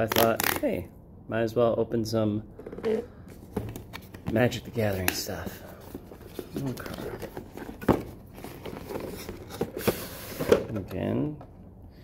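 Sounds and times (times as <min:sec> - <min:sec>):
cardboard box rustling: 0:03.4 - 0:10.8.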